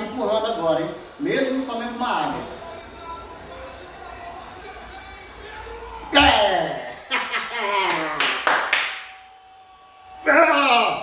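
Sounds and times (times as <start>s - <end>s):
sharp hand claps: 7.8s - 9.2s.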